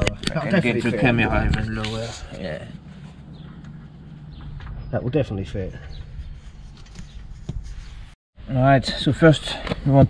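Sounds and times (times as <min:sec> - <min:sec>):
man speaking: 0:04.9 - 0:05.8.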